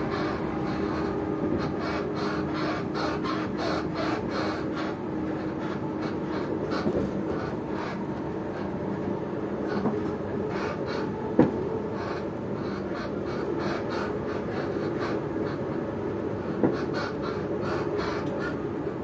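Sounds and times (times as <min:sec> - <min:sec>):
train rumble inside carriage: 0:00.0 - 0:19.0.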